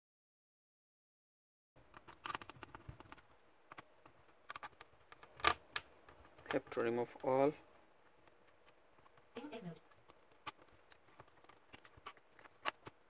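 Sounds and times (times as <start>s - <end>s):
fingers clicking on laptop parts: 1.8s - 13.0s
person speaking: 9.3s - 10.0s.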